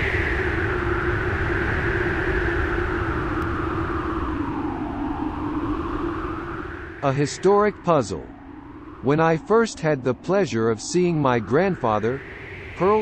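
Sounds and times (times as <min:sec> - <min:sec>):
low steady drone: 0:00.0 - 0:13.0
storm wind howling: 0:00.0 - 0:13.0.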